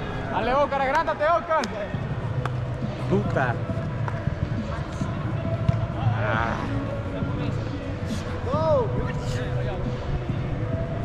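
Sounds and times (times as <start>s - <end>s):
voices calling out in echoing hall: 0.0s - 11.0s.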